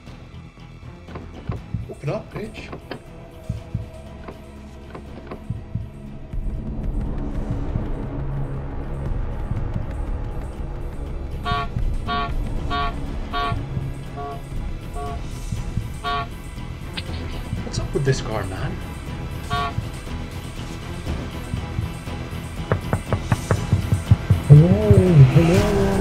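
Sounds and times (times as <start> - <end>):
low steady rumble: 1.6 - 22.9
car horn blasts: 11.4 - 16.4, 19.4 - 20.0.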